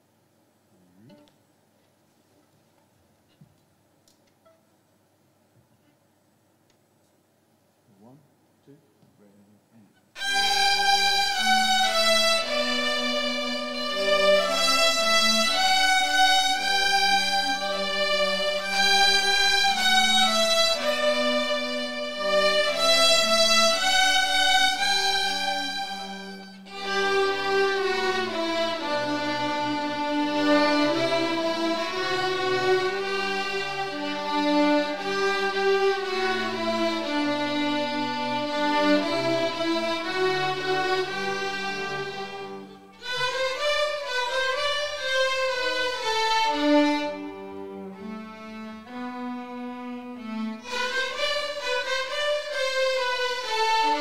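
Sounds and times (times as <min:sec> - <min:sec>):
children's string orchestra: 0:10.1 - 0:54.0.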